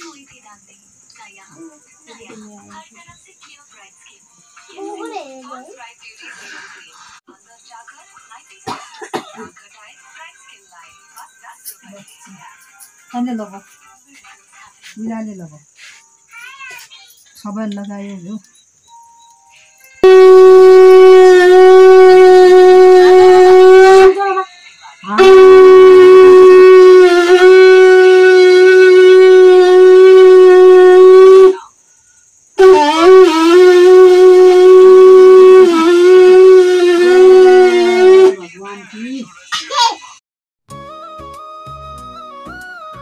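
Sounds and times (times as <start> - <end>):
person coughing: 8.7 - 9.6
conch blown in long note: 20.0 - 24.4, 25.1 - 31.6, 32.6 - 38.4.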